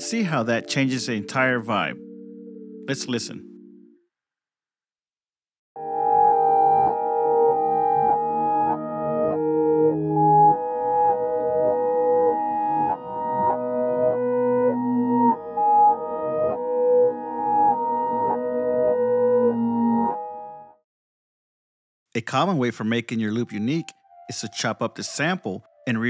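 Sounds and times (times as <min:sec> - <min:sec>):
reversed piano chords: 0:00.0 - 0:04.0, 0:05.8 - 0:20.8.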